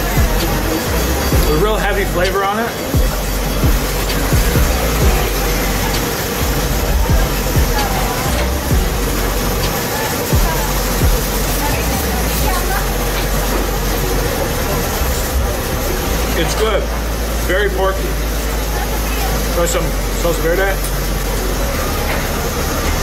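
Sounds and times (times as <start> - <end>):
background voices: 0.0 - 23.0
music: 0.0 - 23.0
traffic rumble: 0.0 - 23.0.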